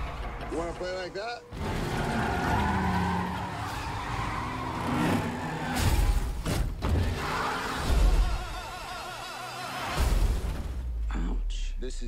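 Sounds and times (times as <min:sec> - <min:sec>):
tyres skidding: 0:00.0 - 0:11.0
car engines revving: 0:00.0 - 0:11.3.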